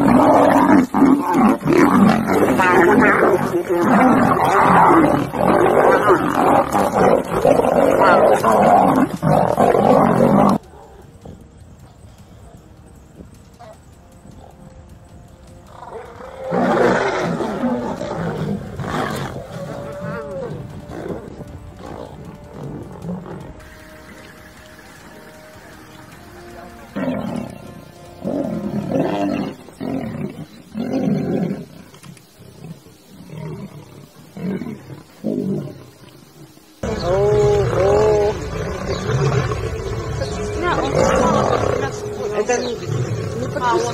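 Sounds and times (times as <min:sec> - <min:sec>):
lions growling and roaring: 0:00.0 - 0:43.9.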